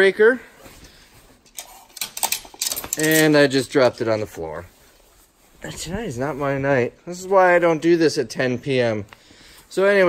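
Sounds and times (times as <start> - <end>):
fabric rustling: 2.7 - 7.8.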